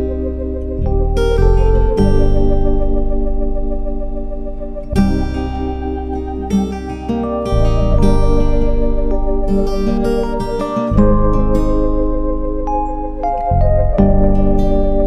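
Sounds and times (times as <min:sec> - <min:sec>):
plucked string music: 0:00.0 - 0:15.0.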